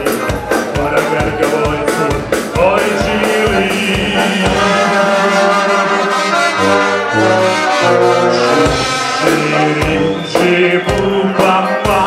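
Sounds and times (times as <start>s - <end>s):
accordion: 0.0s - 12.0s
brass band playing: 0.0s - 12.0s
drums: 0.0s - 12.0s
low brass line: 0.8s - 12.0s.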